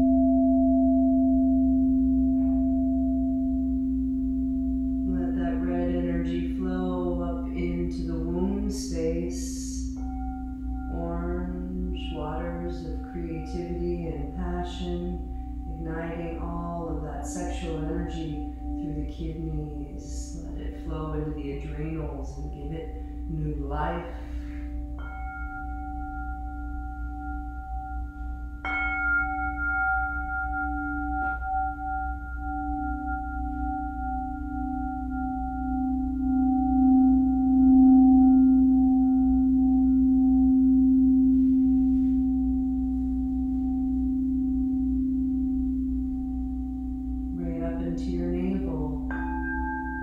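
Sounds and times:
singing bowl strikes: 0.0 - 5.2, 24.2 - 47.6, 48.6 - 50.0
crystal singing bowls ringing: 0.0 - 50.0.

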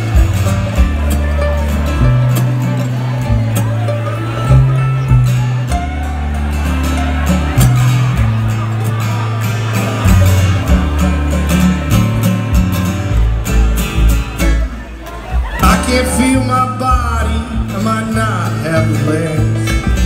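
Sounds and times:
acoustic guitar: 0.0 - 20.0
upright bass: 0.0 - 20.0.

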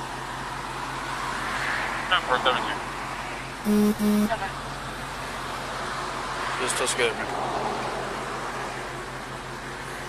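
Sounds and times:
traffic hum and hiss: 0.0 - 3.7, 4.4 - 10.0.

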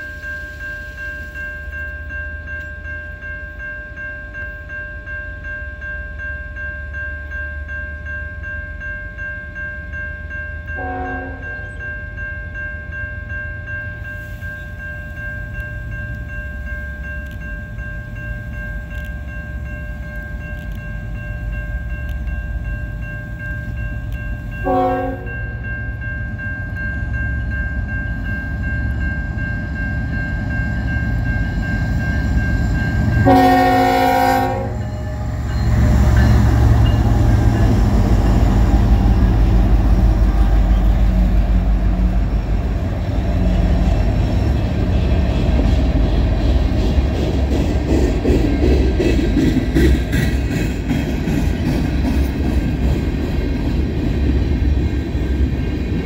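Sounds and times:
level-crossing warning bell: 0.0 - 56.0
train horn blasts: 10.8 - 11.8, 24.6 - 25.4, 33.2 - 36.0
diesel locomotive rumble: 13.7 - 56.0.

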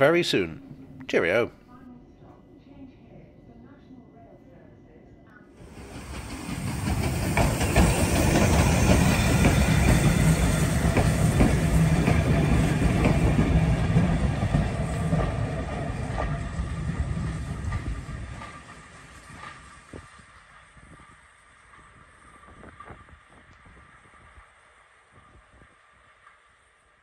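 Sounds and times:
train wheels clicking over rail joints: 5.6 - 20.9
train rumble: 5.6 - 27.0.

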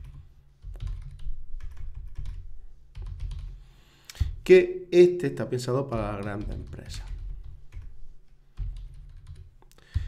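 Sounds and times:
typing on a computer keyboard: 0.0 - 3.6, 6.0 - 10.0.

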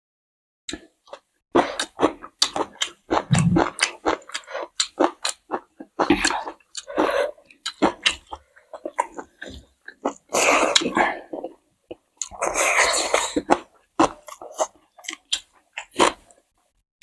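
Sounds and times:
chewing: 0.7 - 16.5
wet mouth clicks: 1.8 - 5.4.

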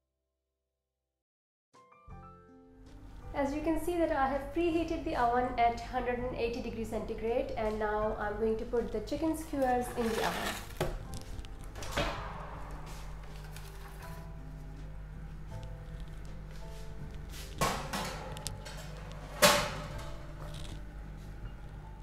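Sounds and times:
soft background music: 1.8 - 22.0.

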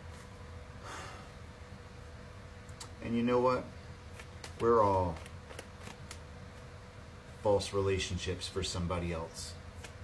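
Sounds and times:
cards being shuffled: 4.1 - 6.7, 9.7 - 10.0.

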